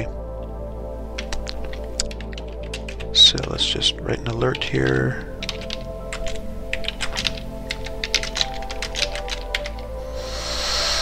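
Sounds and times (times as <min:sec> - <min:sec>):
soft background music: 0:00.0 - 0:11.0
typing on computer keyboard: 0:01.2 - 0:03.5, 0:05.4 - 0:09.8.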